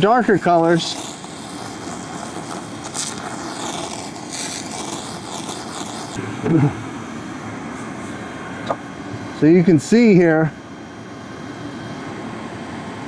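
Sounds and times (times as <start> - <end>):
laser hiss on paint: 0.0 - 6.2
machine drone: 0.0 - 13.0.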